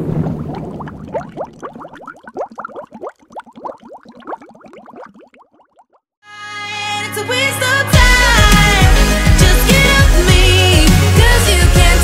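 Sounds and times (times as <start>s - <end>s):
bubble blips: 0.2s - 6.0s.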